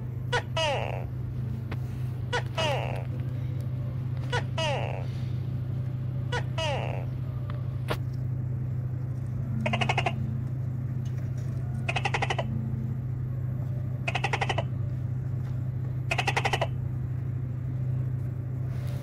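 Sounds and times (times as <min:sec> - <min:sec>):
steady low hum: 0:00.0 - 0:19.0
gecko rasping call: 0:09.6 - 0:10.4, 0:11.8 - 0:12.6, 0:14.0 - 0:14.8.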